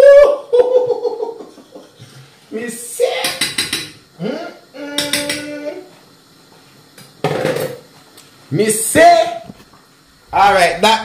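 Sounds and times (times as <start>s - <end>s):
man laughing: 0.0s - 2.0s
man humming mm: 4.2s - 5.9s.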